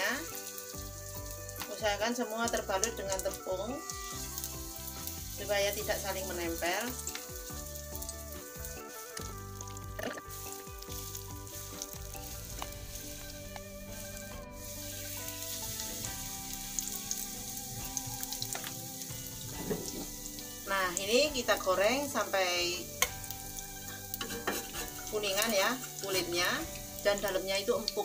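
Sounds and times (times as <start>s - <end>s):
food sizzling in hot oil: 0.0s - 28.0s.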